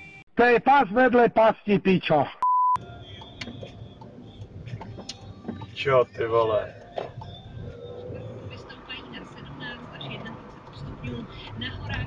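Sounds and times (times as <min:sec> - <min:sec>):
car engine and tyre hum: 0:02.8 - 0:12.0.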